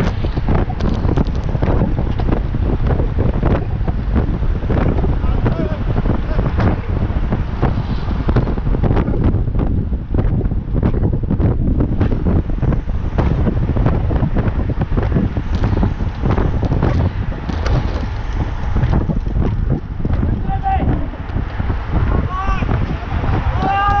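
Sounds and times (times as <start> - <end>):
wind noise on microphone: 0.0 - 24.0.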